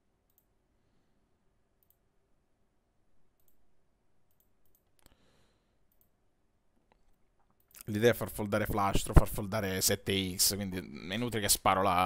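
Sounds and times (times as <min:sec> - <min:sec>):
computer mouse clicks: 0:00.2 - 0:00.5, 0:01.8 - 0:02.1, 0:03.4 - 0:03.6, 0:04.2 - 0:05.1, 0:05.9 - 0:06.2.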